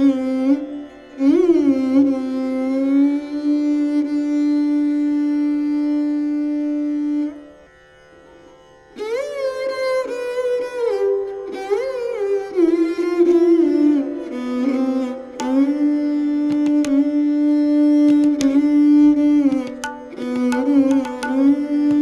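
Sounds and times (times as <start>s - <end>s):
bowed string instrument sliding notes: 12.4s - 22.0s.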